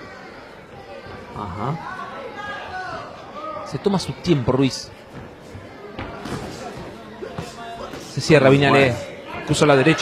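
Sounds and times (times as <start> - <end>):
boxing arena background sound: 0.0 - 10.0.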